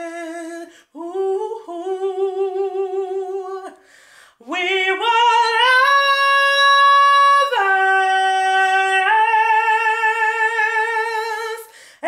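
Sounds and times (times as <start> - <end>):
woman singing a cappella: 0.0 - 12.0
quick breath: 3.8 - 4.4, 11.7 - 12.0.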